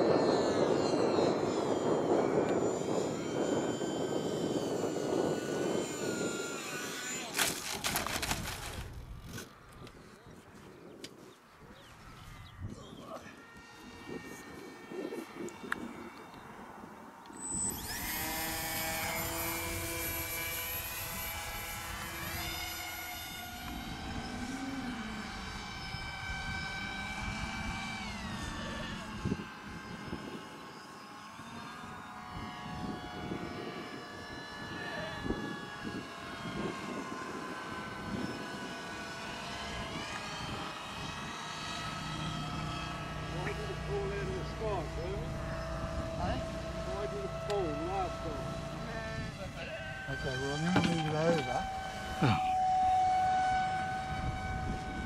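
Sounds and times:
drone propellers whining: 0.0 - 55.0.

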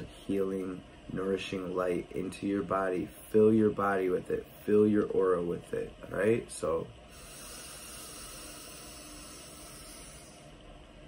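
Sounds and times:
deep breath: 7.1 - 10.5.

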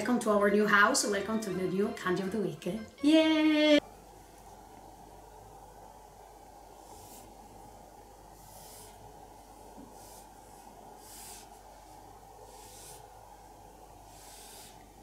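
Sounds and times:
steady low hum: 0.0 - 15.0
pen scratching on paper: 8.4 - 9.0, 12.4 - 13.1, 14.1 - 14.8.

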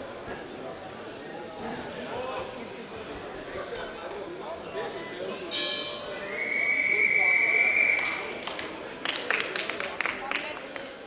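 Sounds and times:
voices in a hall: 0.0 - 11.0
long steady high tone: 5.8 - 8.3
shrill signal tone: 6.1 - 8.1.

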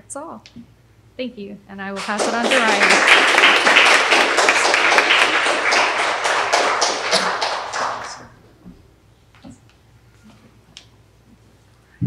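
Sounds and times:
audience applauding: 2.0 - 8.4.

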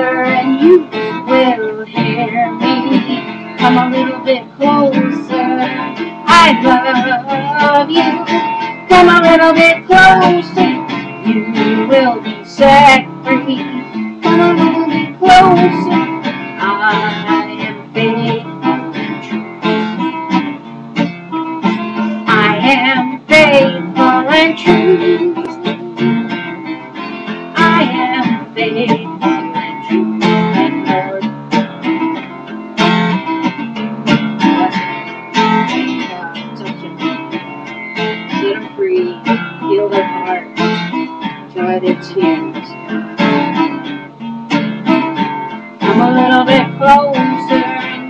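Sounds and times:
acoustic guitar strumming: 0.0 - 48.0.

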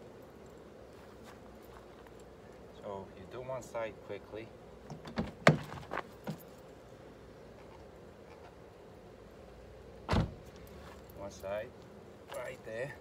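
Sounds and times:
heavy thump on car door: 5.0 - 5.8, 10.1 - 10.4.

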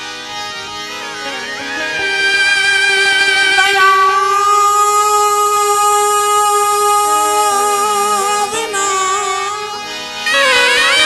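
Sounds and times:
instrumental accompaniment: 0.0 - 11.0
man singing long note: 1.4 - 9.7.

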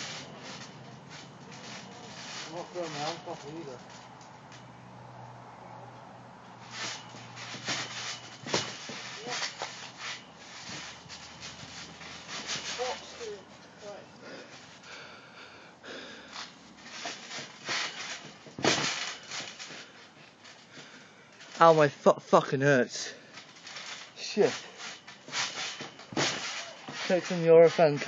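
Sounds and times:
trampoline thumps and rustles: 0.0 - 4.5, 6.6 - 14.9, 16.2 - 28.0.

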